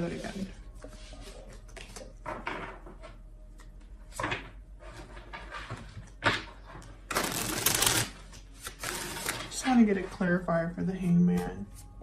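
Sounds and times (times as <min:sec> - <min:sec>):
cards being shuffled: 0:07.1 - 0:09.5.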